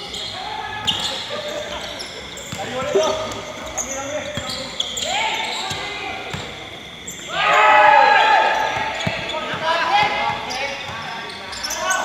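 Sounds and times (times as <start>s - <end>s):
sneaker squeaks: 0.0s - 7.3s, 8.5s - 12.0s
players calling out: 2.6s - 3.8s.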